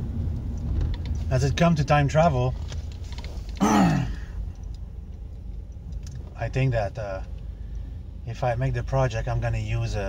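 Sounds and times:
car road noise rumble: 0:00.0 - 0:10.0
man's falling wordless vocal: 0:03.6 - 0:04.3.

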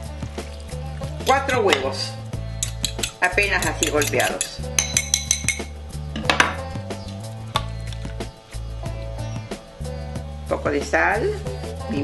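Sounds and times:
soft background music: 0:00.0 - 0:12.0
fork clinking against glass bowl: 0:02.6 - 0:05.7.

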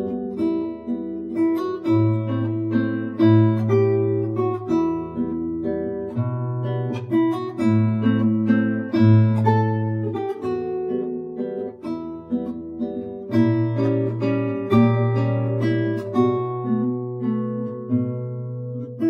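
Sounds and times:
classical guitar fingerstyle: 0:00.0 - 0:19.0.

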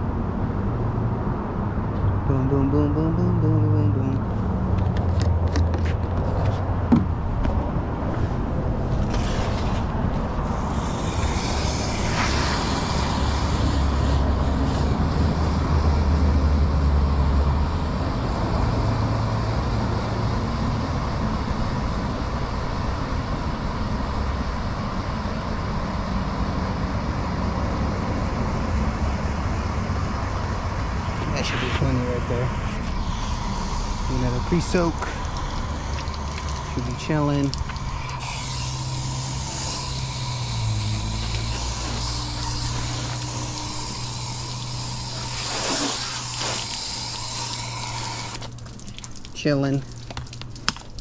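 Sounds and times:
hose water rushing into bucket: 0:08.9 - 0:16.9, 0:31.2 - 0:51.0.

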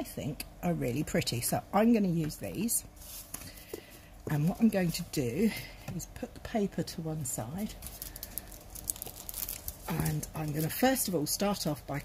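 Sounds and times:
paper rustling and crinkling: 0:07.8 - 0:10.9.

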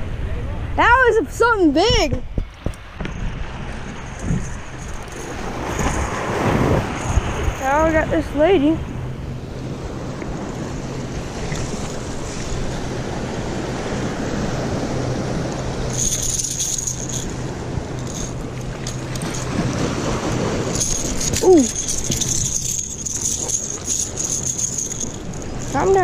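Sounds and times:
wind: 0:00.0 - 0:26.0
fishing lure rattling: 0:04.0 - 0:06.2, 0:06.8 - 0:08.0, 0:15.6 - 0:26.0.

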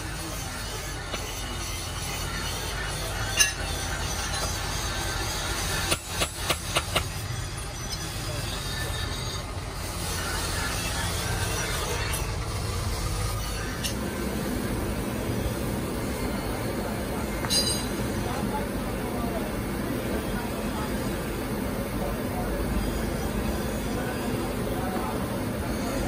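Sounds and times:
forge blower air rush: 0:08.2 - 0:26.0.

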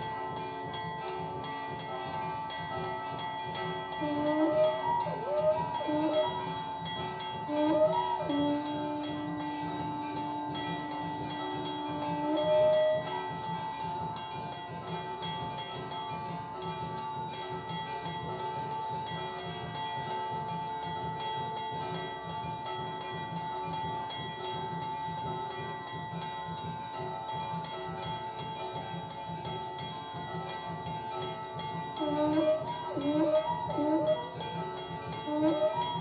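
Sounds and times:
held low note: 0:00.0 - 0:20.5, 0:27.5 - 0:36.0
brass bell ringing: 0:00.0 - 0:36.0.

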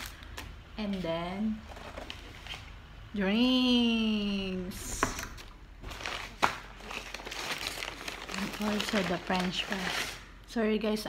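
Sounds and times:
paper bag rustling and crinkling: 0:00.0 - 0:02.8, 0:05.8 - 0:10.3.

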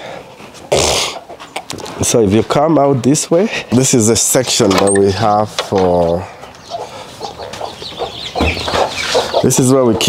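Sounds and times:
hen clucking: 0:01.0 - 0:01.9, 0:04.8 - 0:10.0
ducklings peeping: 0:05.6 - 0:10.0.

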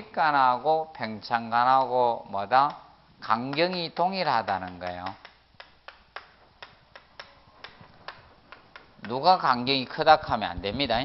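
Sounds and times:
chalk tapping on chalkboard: 0:02.7 - 0:09.4.

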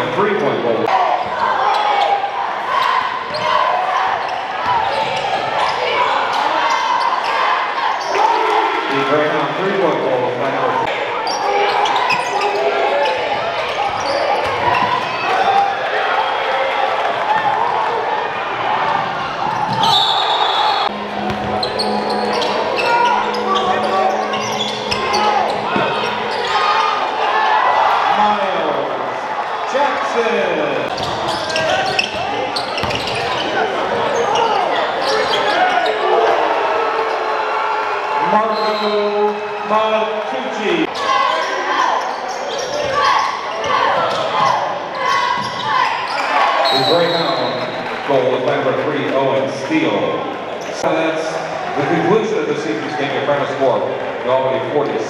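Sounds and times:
chatter and shouts of people: 0:00.0 - 0:55.0
basketball bouncing on hardwood floor: 0:32.8 - 0:33.2.

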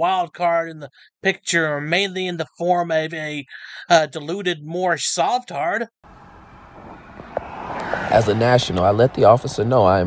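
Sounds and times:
road traffic noise: 0:06.0 - 0:10.0.

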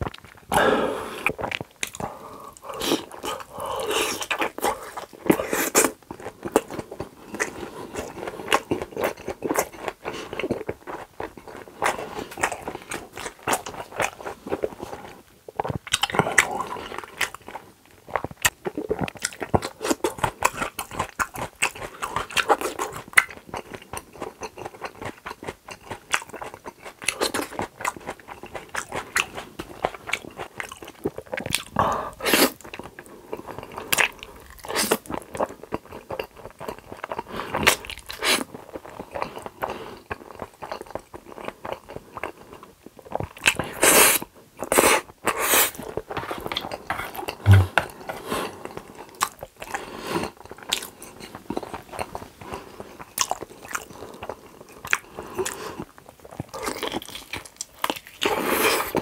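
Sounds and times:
wet chewing noises: 0:01.2 - 0:59.0.

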